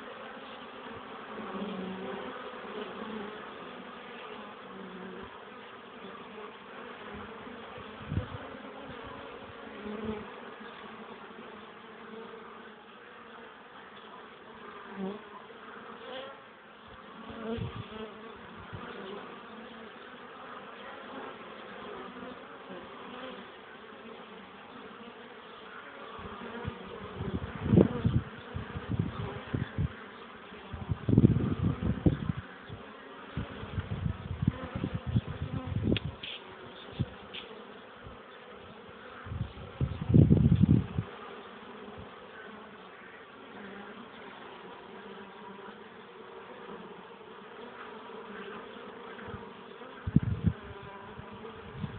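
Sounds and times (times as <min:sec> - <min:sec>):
bees buzzing: 0:00.0 - 0:51.9
low rumbles on microphone: 0:30.7 - 0:32.5, 0:39.3 - 0:41.1, 0:50.1 - 0:51.9.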